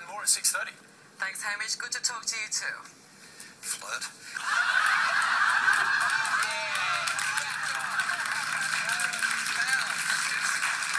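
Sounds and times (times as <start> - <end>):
audience laughing: 4.4 - 10.6.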